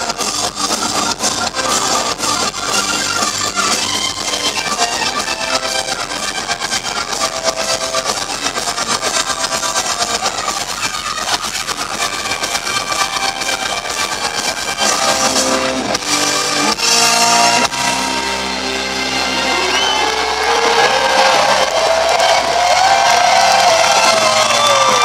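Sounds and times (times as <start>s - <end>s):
electric guitar: 0.0s - 25.0s
rock band playing live: 0.0s - 25.0s.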